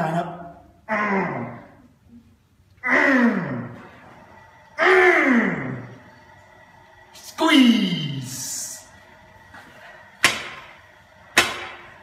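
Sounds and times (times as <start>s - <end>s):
man groaning with effort: 0.8s - 1.8s, 2.8s - 3.9s, 4.8s - 5.9s.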